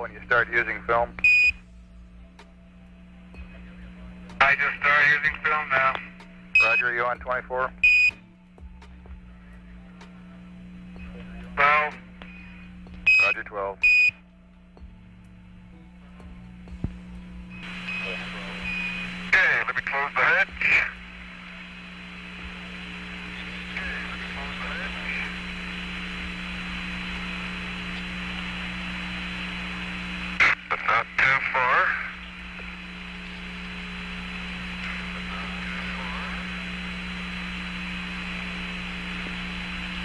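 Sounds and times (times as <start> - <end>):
distorted radio voice: 0.0 - 1.2, 3.6 - 7.8, 11.1 - 12.1, 13.1 - 13.8, 17.7 - 21.2, 22.3 - 29.5, 30.3 - 32.9, 33.6 - 40.0
radio channel hiss: 0.0 - 1.5, 3.0 - 8.2, 9.3 - 14.2, 16.8 - 40.0
steady low hum: 0.0 - 40.0.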